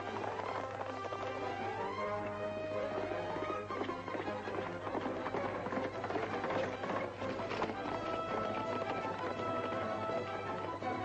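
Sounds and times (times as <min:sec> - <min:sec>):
galloping hoofbeats: 0:00.0 - 0:11.0
orchestral film music: 0:00.0 - 0:11.0.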